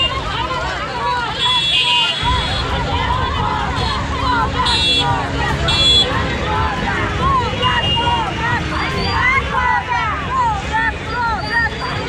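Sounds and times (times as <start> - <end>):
crowd of protesters shouting: 0.0 - 12.0.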